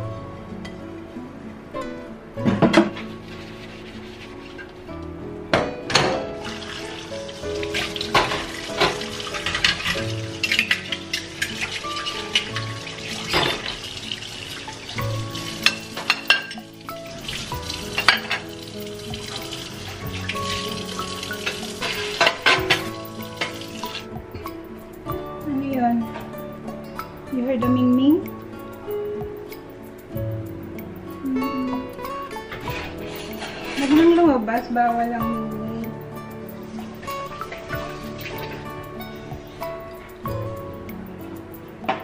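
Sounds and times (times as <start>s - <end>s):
soft background music: 0.0s - 42.0s
dishes clinking in a sink: 5.5s - 7.0s, 7.6s - 24.1s
water running: 6.3s - 28.5s, 30.7s - 42.0s.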